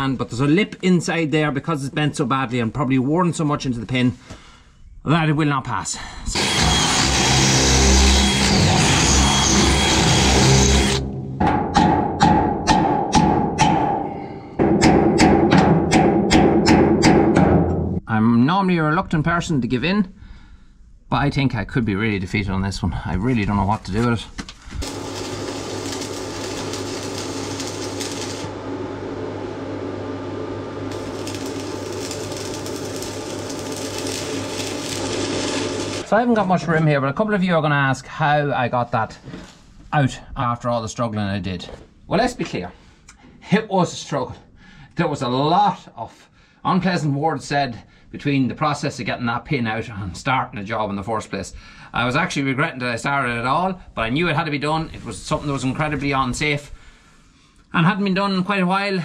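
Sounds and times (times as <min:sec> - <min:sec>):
power drill drilling into steel: 0:06.3 - 0:11.0, 0:24.8 - 0:28.5, 0:30.9 - 0:36.1
welding arc crackling: 0:06.4 - 0:11.0, 0:24.8 - 0:36.1
sharp ringing knocks: 0:11.2 - 0:17.7
low steady hum: 0:25.2 - 0:36.5.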